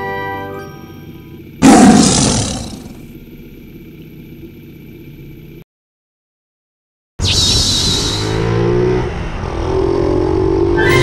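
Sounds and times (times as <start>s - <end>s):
loud roar sound effect: 1.6s - 3.0s.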